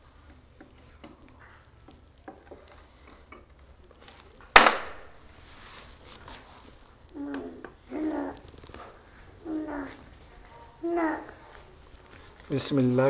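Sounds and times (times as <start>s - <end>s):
clicks and taps of eating from a plate: 0.2s - 3.7s
sudden loud crack: 4.6s - 5.2s.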